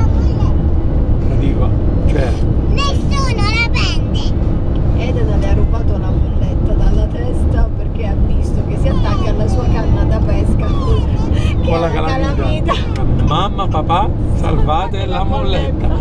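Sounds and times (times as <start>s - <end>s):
child calling out: 0.0s - 0.6s
road and engine noise: 0.0s - 16.0s.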